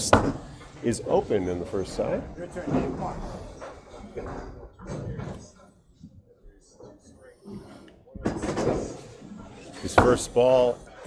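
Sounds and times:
bowling ball rolling and knocking: 0.0s - 5.6s, 8.2s - 10.6s.

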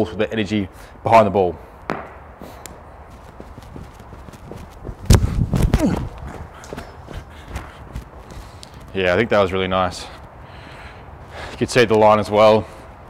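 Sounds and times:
running footsteps on artificial turf: 1.9s - 10.3s
loud thud of a stride: 3.6s - 6.4s
person grunting: 5.7s - 6.2s.

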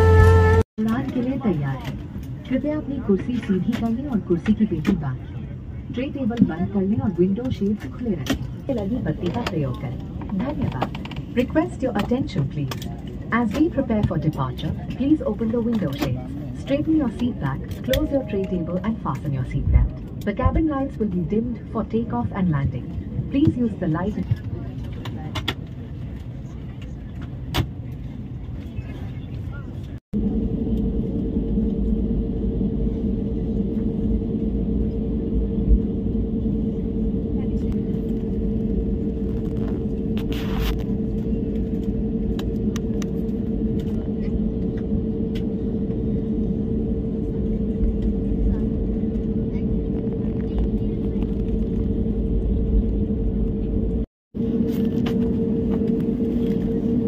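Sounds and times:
airliner cabin rumble and hum: 0.0s - 57.0s
jet engines droning: 0.0s - 57.0s
passenger voices: 0.8s - 30.0s, 32.0s - 53.9s.

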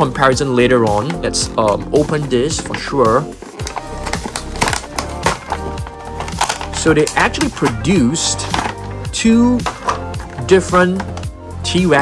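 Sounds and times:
background music: 0.0s - 12.0s
packaging crackling and snapping: 0.8s - 11.4s.

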